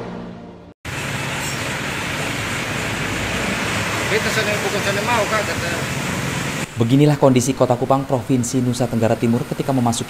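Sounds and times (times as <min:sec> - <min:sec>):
motorbikes and cars driving through water: 0:00.9 - 0:06.8.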